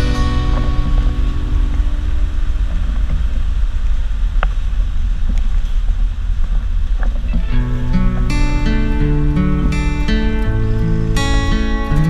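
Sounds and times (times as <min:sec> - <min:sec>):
bus engine and tyre rumble: 0:00.0 - 0:12.0.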